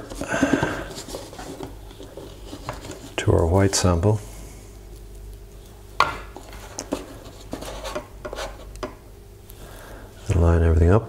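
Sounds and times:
rubbing handling noise: 0.0s - 3.3s, 5.6s - 8.9s.

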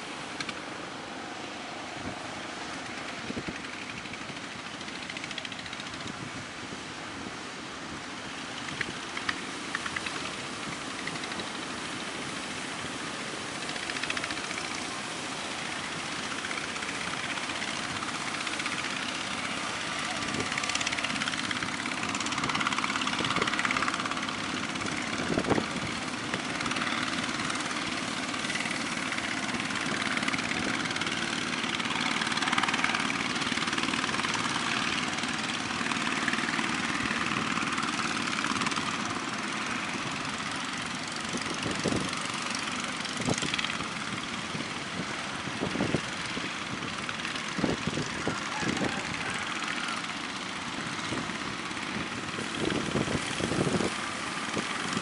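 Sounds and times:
boat engine drone: 0.0s - 55.0s
waves breaking on shore: 0.0s - 55.0s.

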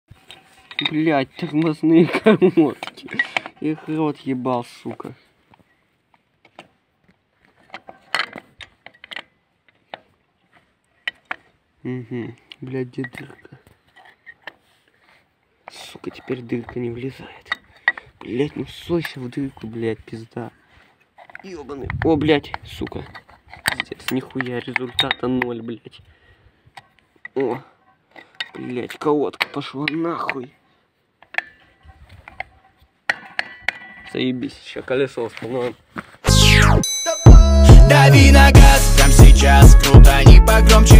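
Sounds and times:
metal clatter: 0.2s - 3.7s, 31.2s - 34.4s
metal brake parts clicking and clinking: 0.3s - 3.6s.

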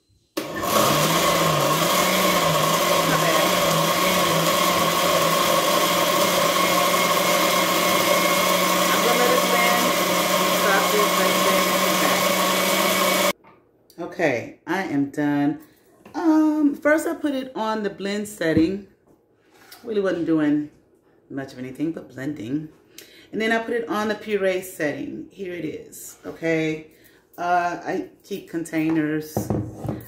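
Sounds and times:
blender running: 0.4s - 13.4s.

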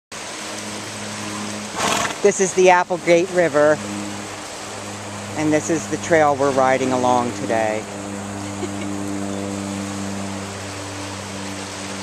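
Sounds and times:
river water rushing over rocks: 0.1s - 12.0s
low hum: 2.7s - 12.0s.

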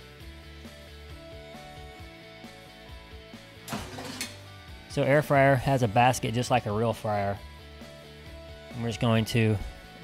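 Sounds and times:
soft instrumental music: 0.0s - 10.0s
air fryer basket scraping: 3.7s - 4.5s.

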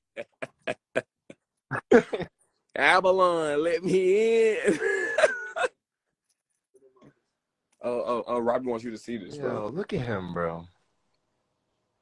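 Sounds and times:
men laughing: 0.0s - 2.3s, 4.0s - 5.8s.

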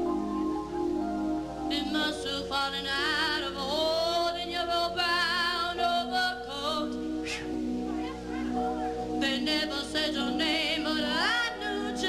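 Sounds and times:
woman singing: 1.7s - 12.0s.

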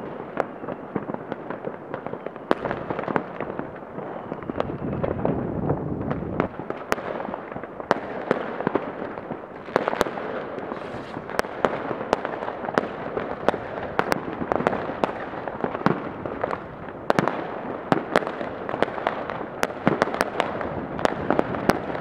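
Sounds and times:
firework bangs: 0.0s - 22.0s
fireworks crackling: 0.0s - 22.0s.

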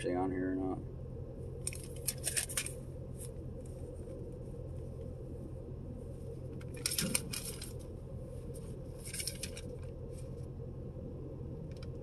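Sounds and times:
low hum in car cabin: 0.0s - 12.0s
paper crinkling and rustling: 6.7s - 7.8s, 8.5s - 10.4s.

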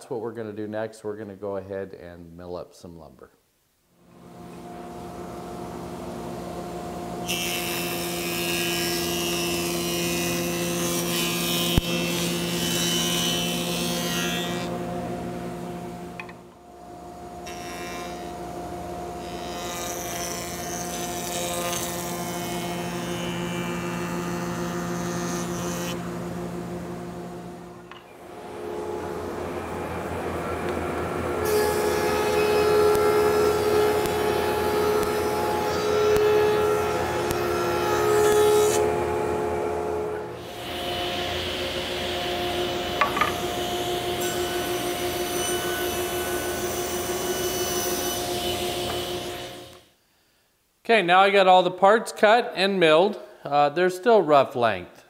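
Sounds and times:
thickness planer planing boards: 7.2s - 15.4s, 19.2s - 27.4s, 28.2s - 49.7s
jointer motor hum: 17.4s - 49.8s.

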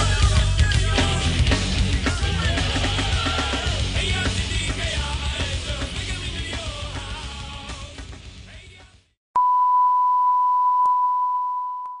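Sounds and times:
rock music: 0.0s - 9.1s.

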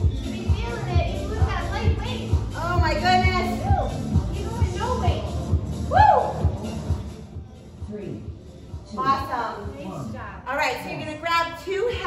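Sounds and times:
kick drum beat: 0.0s - 10.1s.

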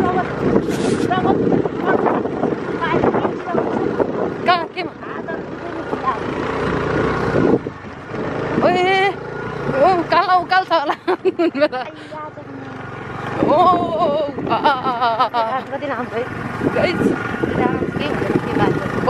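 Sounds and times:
vehicle engine running: 0.0s - 19.0s
wind buffeting microphone: 0.0s - 19.0s
people laughing and exclaiming: 13.5s - 15.7s.

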